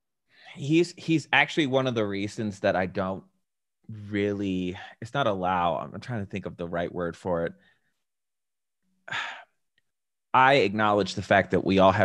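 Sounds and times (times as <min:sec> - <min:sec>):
man sighing: 0:09.1 - 0:09.6.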